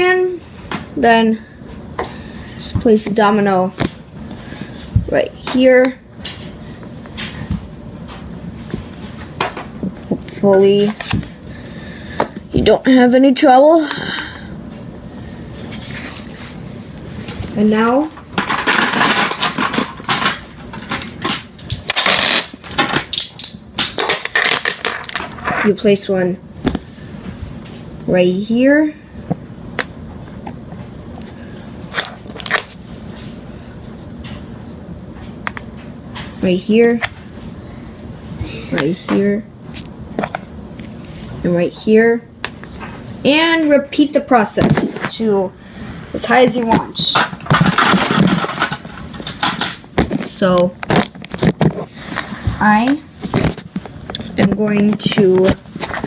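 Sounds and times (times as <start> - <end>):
low room noise: 0.0 - 56.0.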